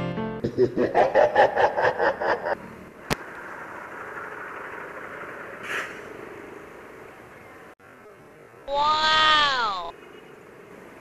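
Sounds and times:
scooter engine and road noise: 2.6 - 11.0
loud high falling call: 8.7 - 9.9.

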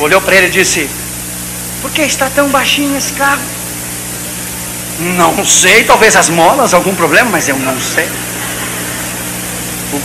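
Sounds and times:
low even hum: 0.0 - 10.0
steady hiss: 0.0 - 10.0.

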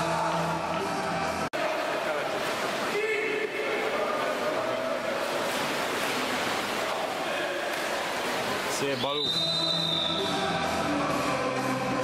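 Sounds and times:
pool water splashing: 0.0 - 12.0.

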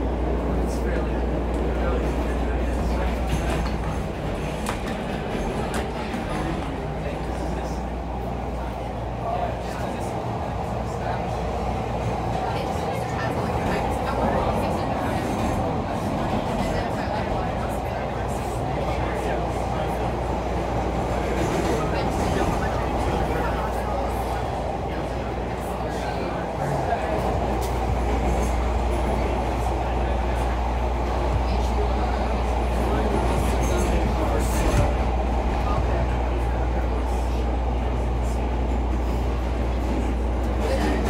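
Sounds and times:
subway car rumble on rails: 0.0 - 41.0.

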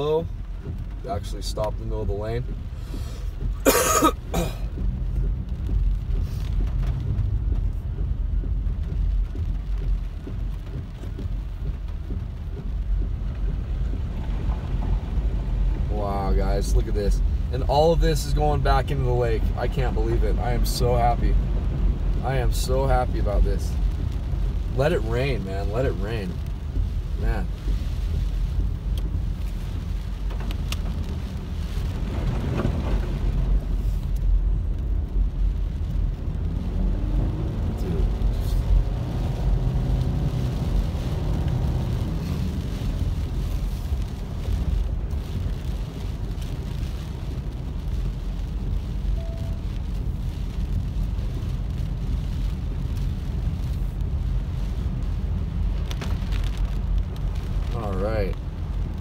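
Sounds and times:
tyres rumbling on wet road: 0.0 - 59.0.

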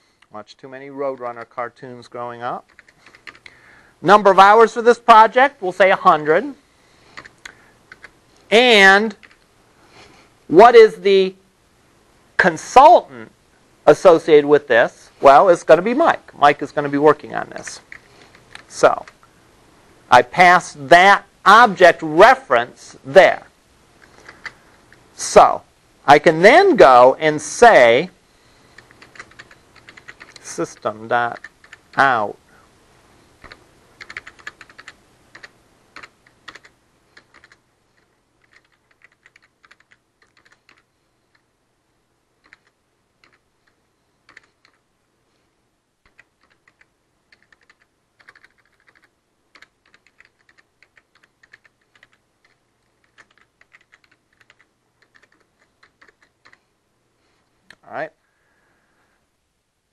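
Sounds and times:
low steady hum: 0.0 - 59.9
keyboard typing: 2.6 - 3.6, 7.1 - 8.2, 9.1 - 9.4, 17.8 - 19.2, 24.0 - 24.6, 28.7 - 32.1, 33.4 - 41.5, 42.4 - 44.8, 46.0 - 56.6.

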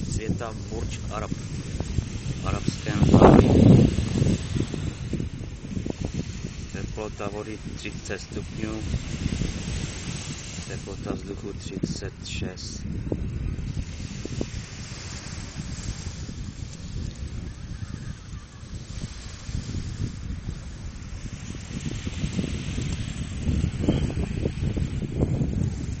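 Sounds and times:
small waves breaking on shore: 0.0 - 26.0
wind buffeting microphone: 0.0 - 26.0.

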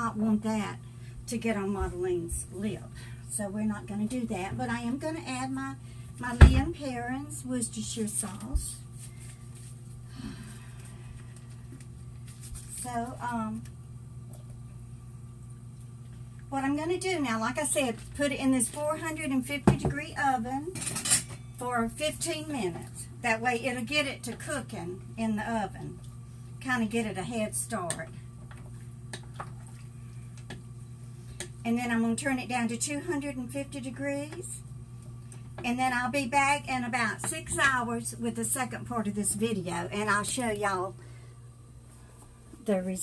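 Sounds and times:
steady low hum: 0.0 - 43.0.

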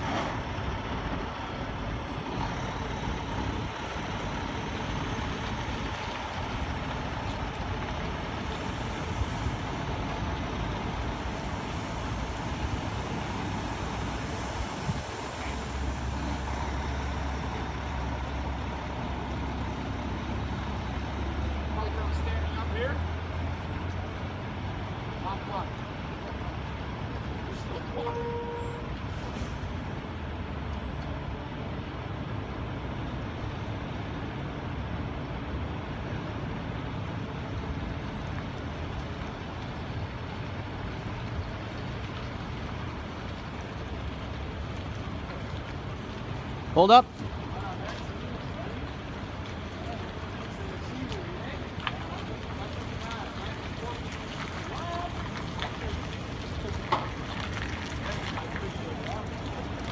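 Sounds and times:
diesel truck engine rumble: 0.0 - 59.9
street traffic noise: 0.0 - 59.9
tyres on wet pavement: 0.0 - 59.9.

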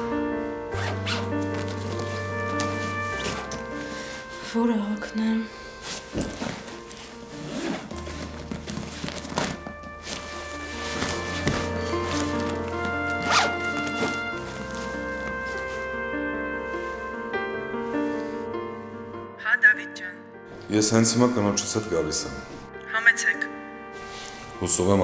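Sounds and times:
background music: 0.0 - 25.0
suitcase zipper pulled: 0.7 - 4.5, 5.8 - 15.8.

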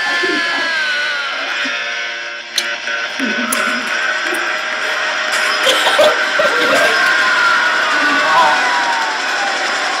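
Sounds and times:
people talking: 0.0 - 1.8, 3.1 - 10.0
faint music: 0.0 - 10.0.

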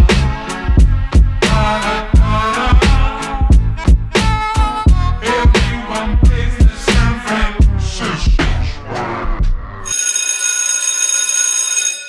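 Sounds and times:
music: 0.0 - 9.9
alarm bell ringing: 9.9 - 12.0.

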